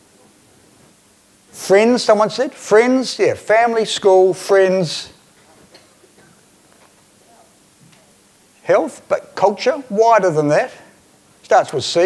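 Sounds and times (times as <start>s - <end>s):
room hiss: 0.0s - 12.0s.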